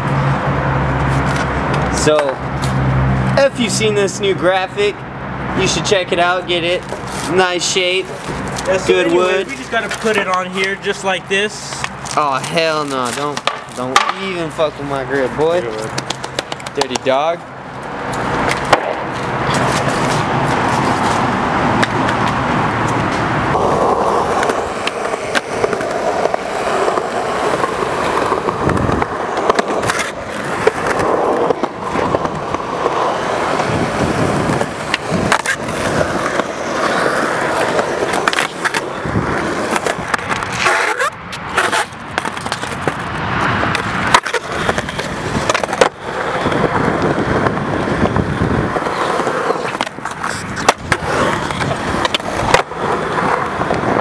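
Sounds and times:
skateboard wheels rolling on concrete: 0.0s - 54.0s
skateboard clacks: 6.6s - 11.0s, 11.7s - 14.6s, 15.7s - 54.0s.

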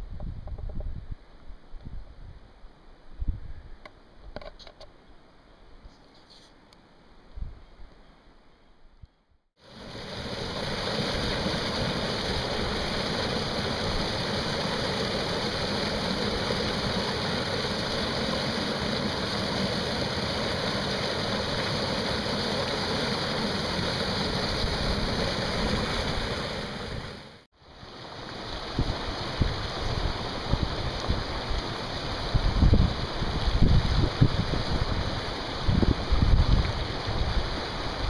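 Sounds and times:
water rushing over boulders: 9.6s - 38.0s.

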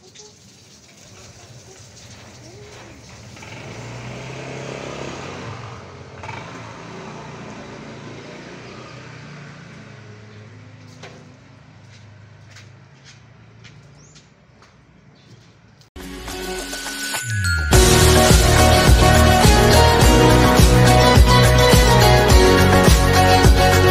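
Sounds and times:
vehicle engine hum: 2.4s - 14.1s.

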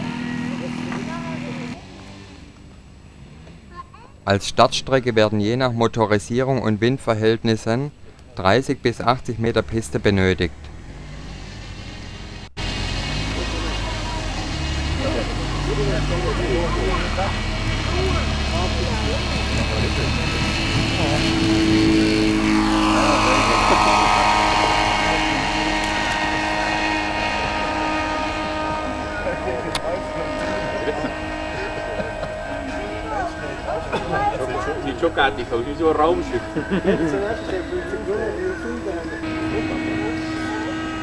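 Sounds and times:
model airplane engine and propeller: 0.0s - 3.7s, 10.5s - 41.0s.

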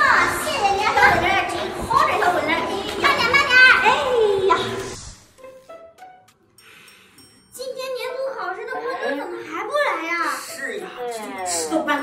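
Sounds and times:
woman talking: 8.6s - 12.0s.

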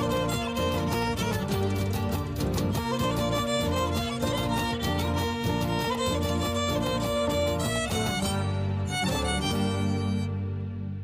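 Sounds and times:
strummed acoustic guitars: 0.0s - 10.6s
accordion: 0.0s - 11.0s
violin melody: 0.0s - 11.0s.

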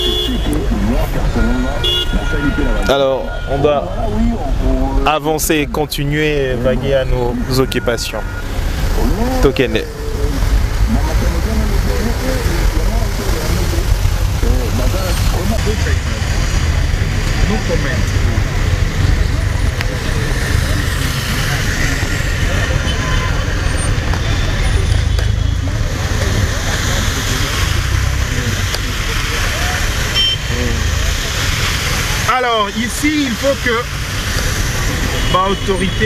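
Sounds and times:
indistinct voices talking: 0.0s - 36.0s
vehicle driving through water: 8.6s - 36.0s.

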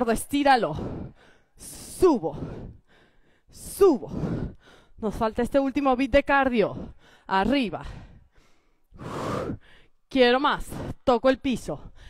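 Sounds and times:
woman breathing hard: 0.7s - 5.0s, 6.7s - 10.1s.

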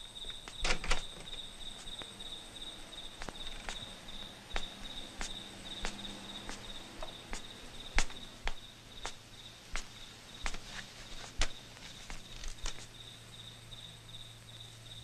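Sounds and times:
crickets chirping: 0.0s - 15.0s
sharp taps: 3.2s - 12.9s.

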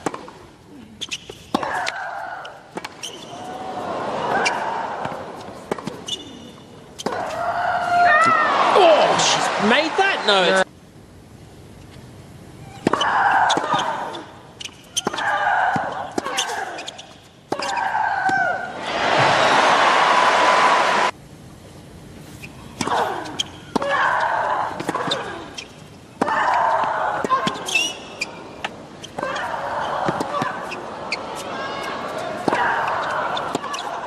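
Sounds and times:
crowd noise: 1.8s - 10.7s, 18.4s - 21.2s, 26.4s - 34.0s
voices: 26.2s - 34.0s.

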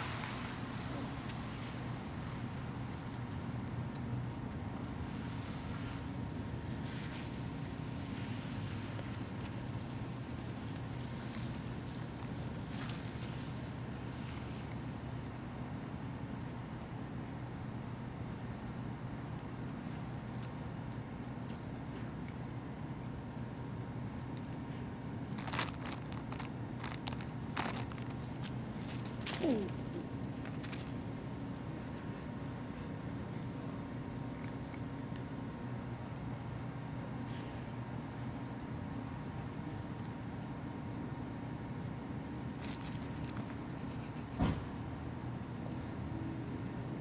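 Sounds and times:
low background rumble: 0.0s - 47.0s
low mechanical hum: 0.0s - 47.0s
plastic bag crinkling: 25.3s - 31.0s.

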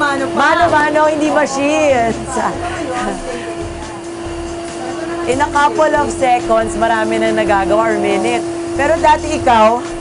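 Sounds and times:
bottling machinery humming and hissing: 0.0s - 10.0s.

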